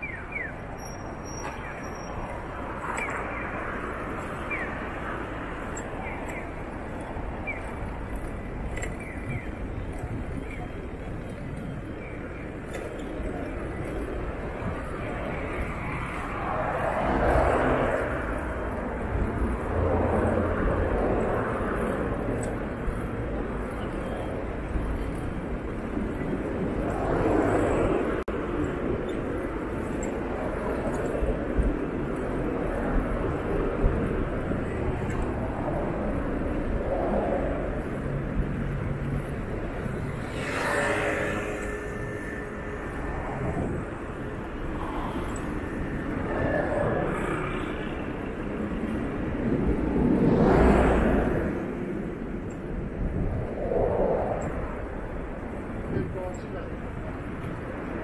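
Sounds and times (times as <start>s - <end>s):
cars passing: 0.0s - 58.0s
low traffic rumble: 0.0s - 58.0s.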